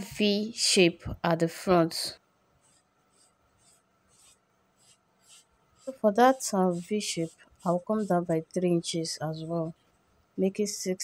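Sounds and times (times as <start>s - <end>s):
chalk scratching on fabric: 2.6s - 9.8s.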